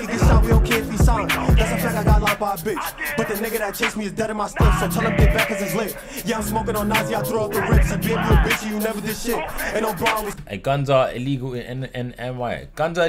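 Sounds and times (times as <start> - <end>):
rapid hi-hat ticks: 0.0 - 6.4, 7.0 - 10.5
man rapping: 0.0 - 12.1
deep bass hits: 0.1 - 2.5, 4.6 - 5.5, 6.3 - 8.7.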